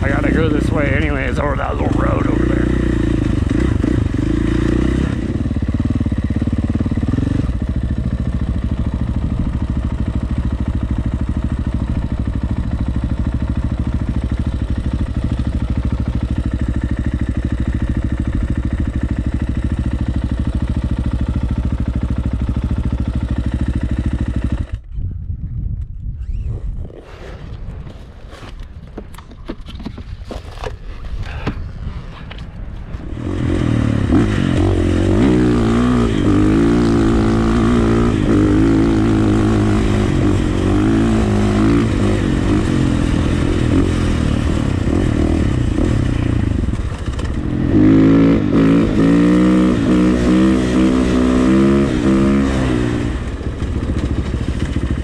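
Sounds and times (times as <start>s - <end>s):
dirt bike engine running: 0.0s - 25.2s, 27.5s - 55.0s.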